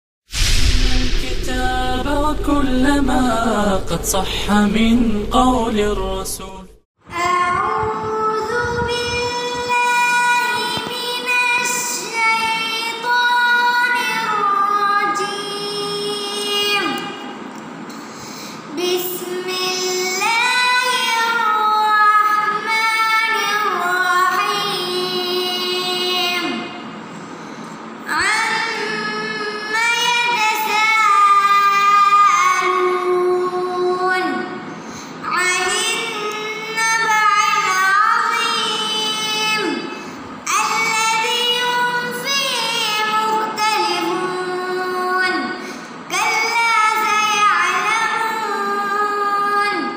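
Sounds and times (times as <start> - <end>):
boy reciting melodically: 1.2 - 17.4, 18.6 - 26.8, 27.4 - 49.9.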